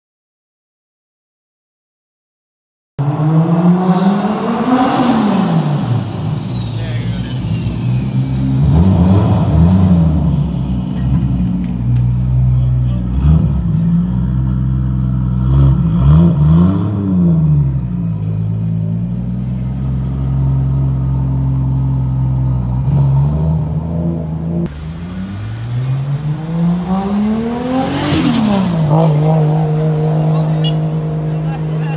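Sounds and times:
car engine revving: 3.0 - 31.9
car engine idling: 4.0 - 16.2.

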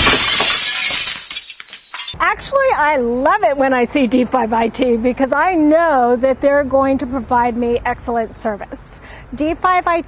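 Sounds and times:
camera crashing and shattering: 0.0 - 2.2.

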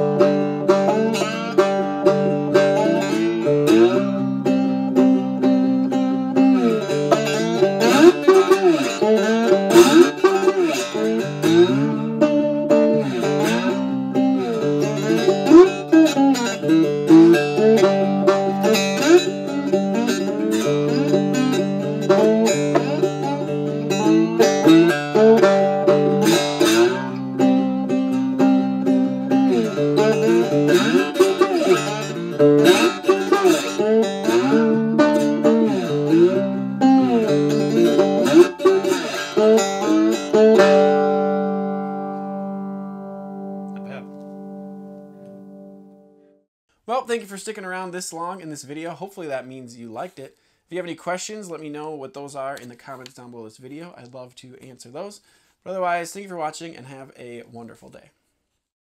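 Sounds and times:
electric slide guitar riffs: 0.0 - 46.0.

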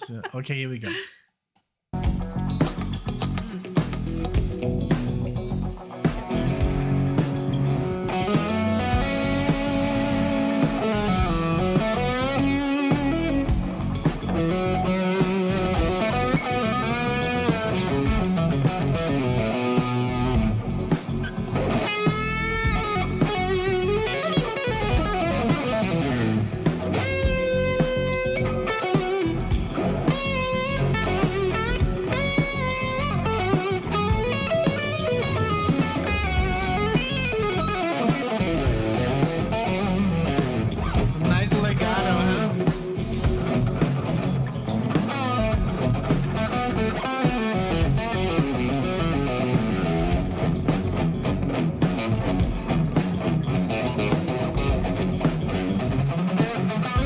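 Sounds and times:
bass guitar: 1.9 - 57.0
drums: 2.0 - 57.0
electric guitar lead: 2.0 - 57.0.

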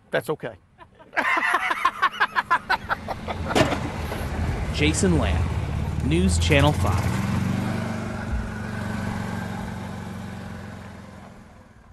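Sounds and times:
man laughing heartily: 0.8 - 3.7
golf cart humming: 1.1 - 11.9.

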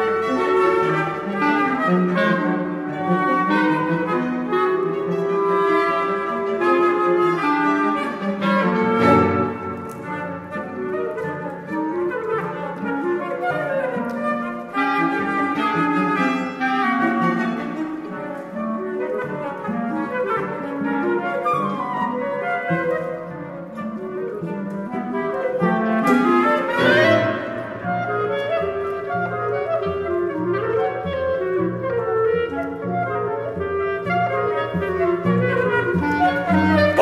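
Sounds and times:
chamber music: 0.0 - 37.0
clarinet: 0.0 - 37.0.

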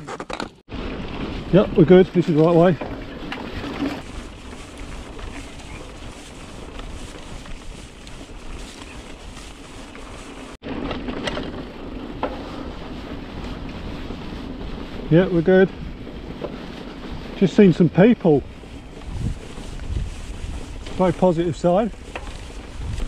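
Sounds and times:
tyres rolling on dirt trail: 0.0 - 23.0
wind rushing over microphone: 0.7 - 10.6, 11.4 - 23.0
bike clicks and knocks: 6.6 - 12.7, 21.9 - 23.0.

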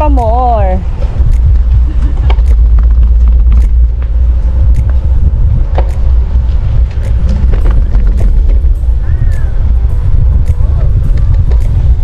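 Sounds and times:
wind buffeting microphone: 0.0 - 12.0
bicycle clicks and rattles: 0.9 - 12.0.

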